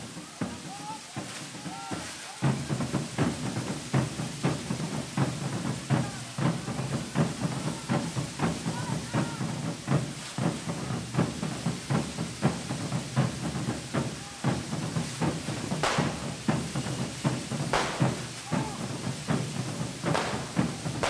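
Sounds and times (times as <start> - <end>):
hiss of firework fountains: 0.0 - 21.0
steady drumbeat: 0.0 - 21.0
crowd voices: 15.8 - 21.0.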